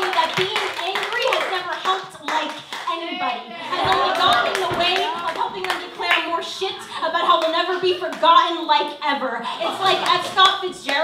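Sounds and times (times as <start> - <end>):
audience clapping and cheering: 0.0 - 6.5.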